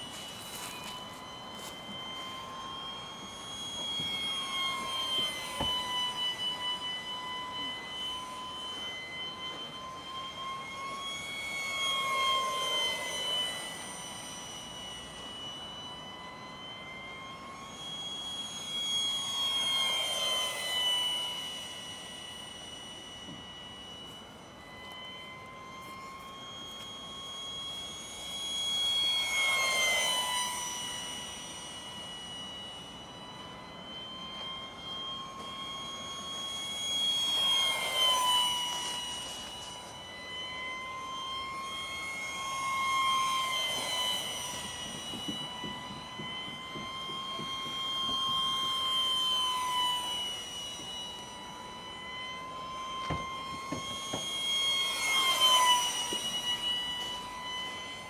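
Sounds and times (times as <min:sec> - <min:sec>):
model aircraft engine whine: 0:00.0 - 0:58.0.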